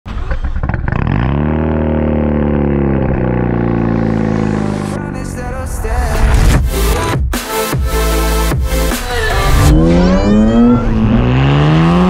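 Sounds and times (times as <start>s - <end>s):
engine cranking: 0.1s - 1.4s.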